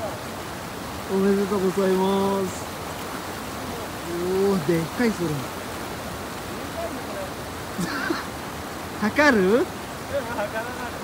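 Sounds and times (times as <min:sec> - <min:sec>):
river water rushing: 0:00.0 - 0:11.0.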